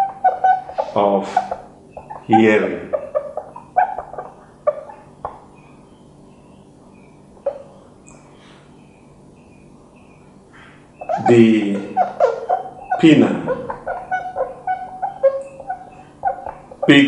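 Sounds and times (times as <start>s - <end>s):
marker squeaking on whiteboard: 0.0s - 5.4s, 11.0s - 17.0s.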